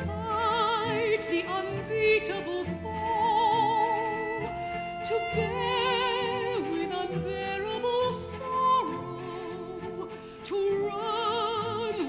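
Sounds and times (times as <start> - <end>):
orchestra playing: 0.0 - 12.0
woman singing opera: 0.0 - 12.0.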